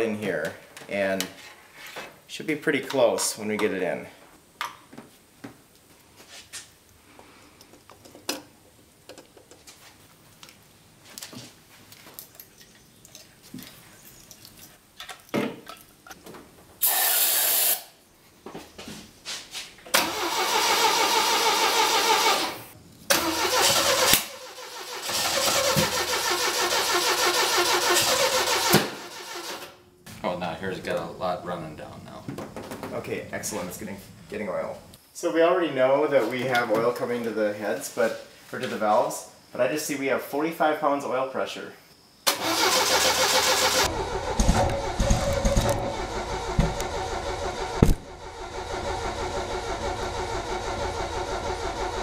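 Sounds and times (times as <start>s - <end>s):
aerosol can hiss: 16.8s - 17.9s
engine cranking on the starter: 19.9s - 29.8s, 42.3s - 52.0s.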